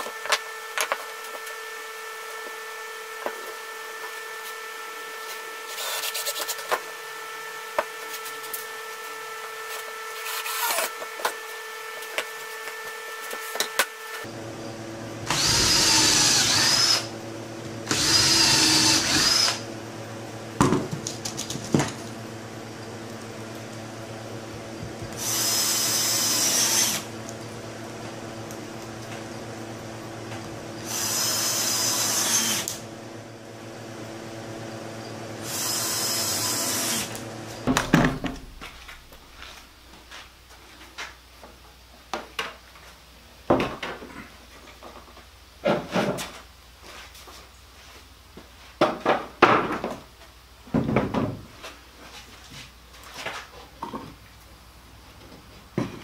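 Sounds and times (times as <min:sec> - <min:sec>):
cordless drill driving screws: 0:15.2 - 0:17.1, 0:17.8 - 0:19.7, 0:25.1 - 0:27.1, 0:30.8 - 0:32.8, 0:35.4 - 0:37.2.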